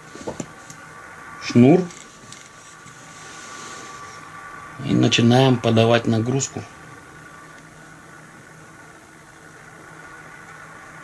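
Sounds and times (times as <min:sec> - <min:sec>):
fishing line rubbing and rustling: 0:01.8 - 0:04.3.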